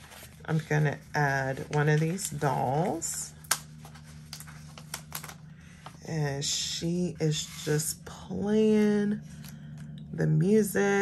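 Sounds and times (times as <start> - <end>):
paper sticker sheet crinkling: 0.0 - 5.4
faint low hum: 0.0 - 11.0.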